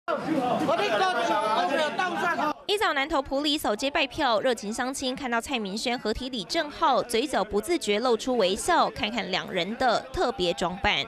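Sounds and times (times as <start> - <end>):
people talking over one another: 0.1 - 11.0.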